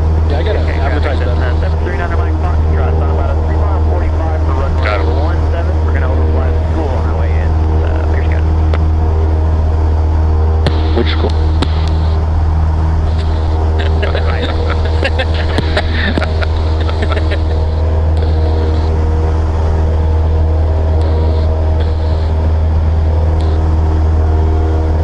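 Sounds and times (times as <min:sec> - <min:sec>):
faint voices: 0:00.0 - 0:09.3, 0:10.4 - 0:25.0
propeller plane engine running: 0:00.0 - 0:25.0.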